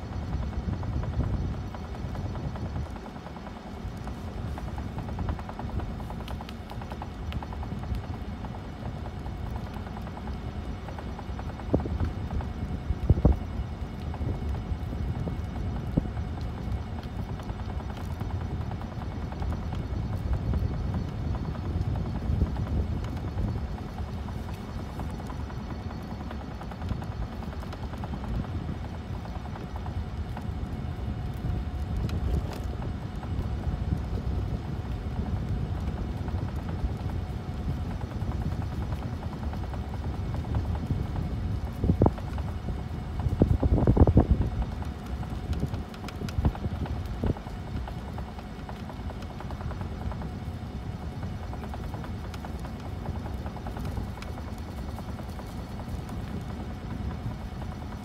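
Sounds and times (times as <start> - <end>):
wind rumbling on microphone: 0.0 - 58.0.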